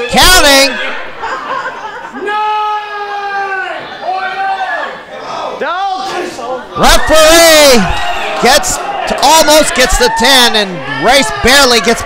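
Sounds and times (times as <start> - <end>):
crowd in a hall: 0.0 - 12.0.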